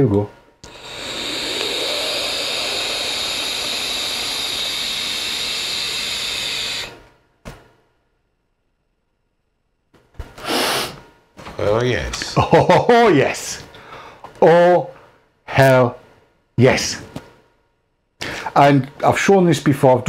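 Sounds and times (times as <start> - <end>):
short breathy burst: 0.6 - 7.0, 10.4 - 11.0
air rushing through vape tank: 0.6 - 7.1
coil sizzling: 0.6 - 7.2.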